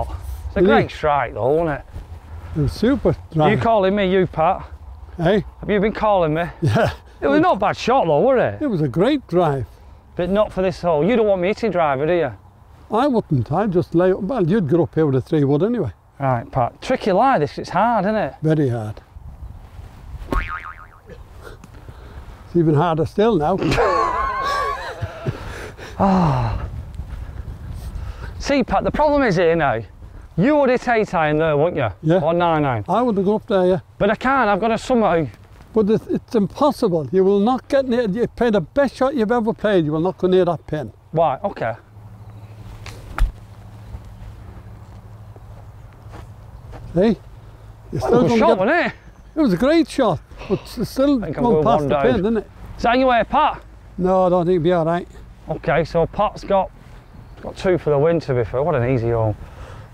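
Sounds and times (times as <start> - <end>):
golf club striking ball: 20.3 - 21.0.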